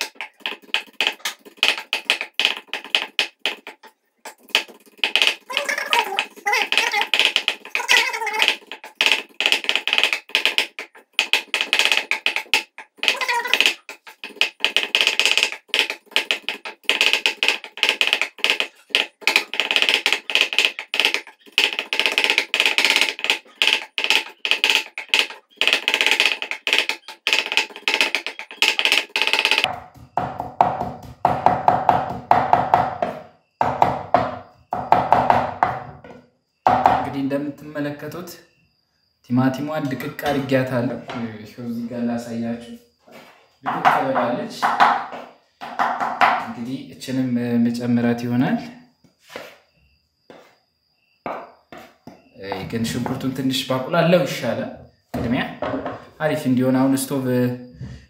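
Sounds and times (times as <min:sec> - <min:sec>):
knife chopping on wooden board: 0:29.6 - 0:35.8.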